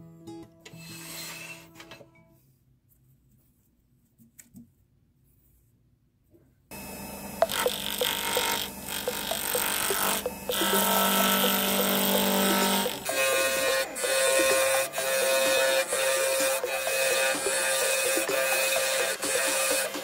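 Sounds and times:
wood lathe motor running: 6.7 - 20.0
turning tool cutting wood: 7.0 - 20.0.

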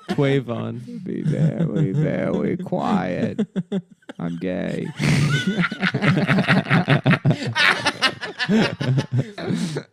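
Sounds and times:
people laughing hard: 0.0 - 9.9.

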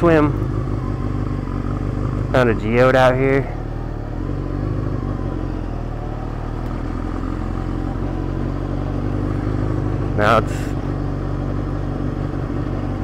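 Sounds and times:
motorcycle engine running steadily: 0.0 - 13.0.

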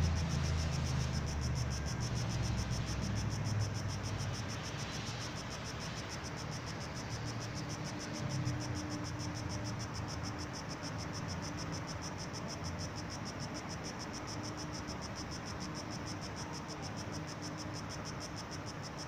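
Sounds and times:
distant construction machinery rumble: 0.0 - 12.0.

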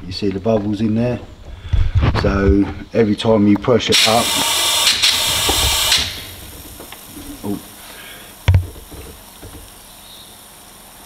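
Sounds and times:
compressed air hissing: 4.0 - 11.0.

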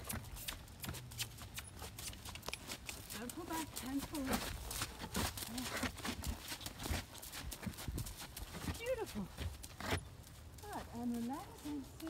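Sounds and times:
horse hooves trotting on gravel: 0.0 - 12.0.

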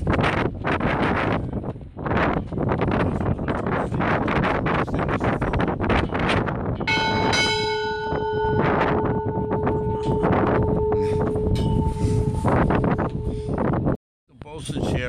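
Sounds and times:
wind buffeting microphone: 0.0 - 15.0
ship's bell ringing: 6.8 - 13.6.

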